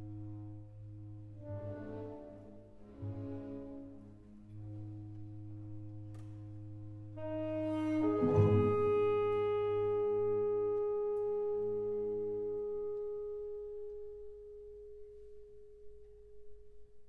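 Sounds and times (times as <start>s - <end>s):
orchestra holding soft chord: 1.1s - 15.9s.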